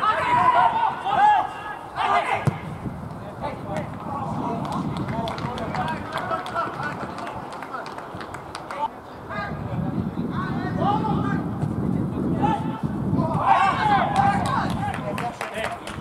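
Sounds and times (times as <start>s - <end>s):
footballers shouting: 0.0s - 2.8s, 12.2s - 16.0s.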